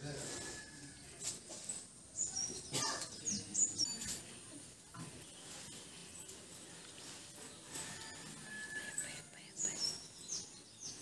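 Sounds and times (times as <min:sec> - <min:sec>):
small birds chirping: 0:01.1 - 0:11.0.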